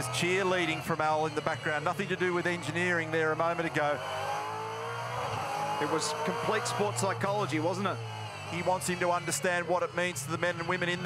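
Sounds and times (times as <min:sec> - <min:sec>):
race car engine: 0:00.0 - 0:11.0.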